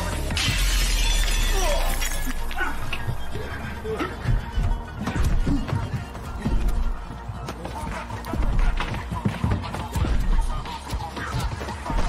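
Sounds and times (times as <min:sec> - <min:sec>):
glass shattering: 0:00.3 - 0:02.6.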